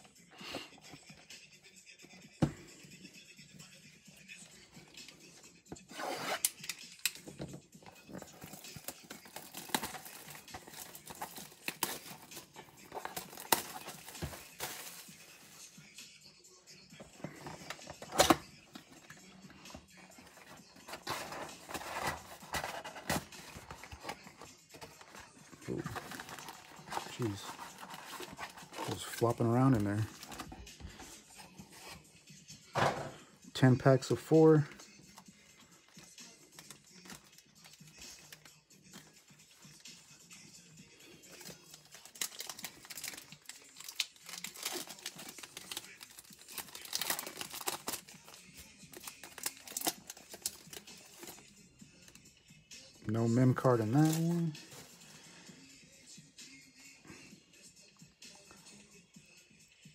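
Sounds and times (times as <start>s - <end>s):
foil packs rustling: 8.3s - 15.5s, 20.3s - 24.2s, 25.0s - 30.5s, 42.0s - 48.3s
plastic wrap crinkling and tearing: 8.4s - 15.1s, 25.0s - 30.5s, 41.4s - 51.4s.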